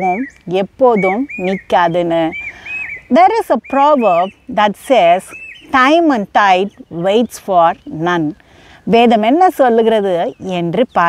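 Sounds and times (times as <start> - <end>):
bird whistling calls: 0.0 - 6.0
woman speaking: 0.0 - 11.0.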